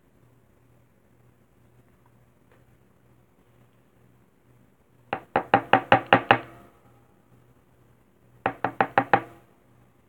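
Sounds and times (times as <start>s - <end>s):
knocking on hollow surface: 5.2s - 6.6s, 8.5s - 9.4s.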